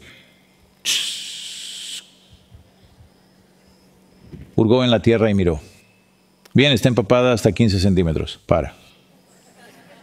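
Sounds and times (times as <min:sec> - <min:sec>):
man making hissing shhh: 0:00.0 - 0:02.5.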